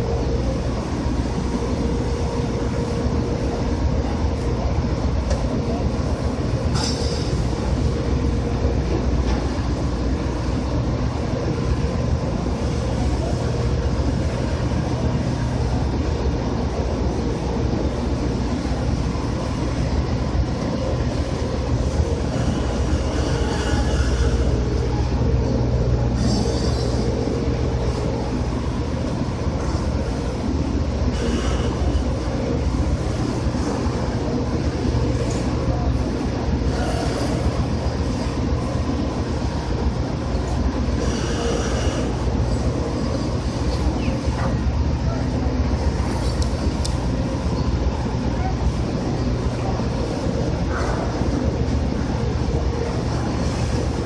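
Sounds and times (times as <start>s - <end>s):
ship machinery drone: 0.0s - 54.0s
steady hum: 0.0s - 54.0s.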